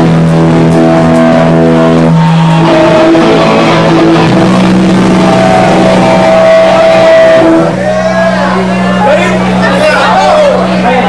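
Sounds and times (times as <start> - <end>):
distorted electric guitar and bass: 0.0 - 11.0.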